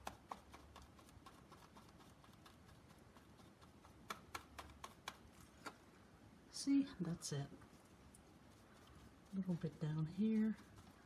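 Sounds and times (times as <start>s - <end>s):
paintbrush tapping through stencil: 0.0s - 5.8s, 8.1s - 11.0s.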